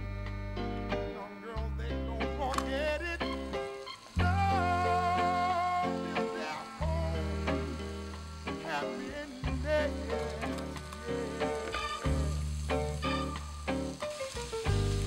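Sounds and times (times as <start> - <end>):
music playing: 0.0 - 15.0
food sizzling in a frying pan: 2.6 - 15.0.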